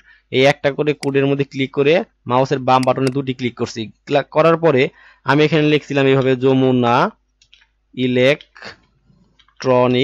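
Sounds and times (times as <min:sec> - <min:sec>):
faint keyboard clicks: 0:07.3 - 0:09.7.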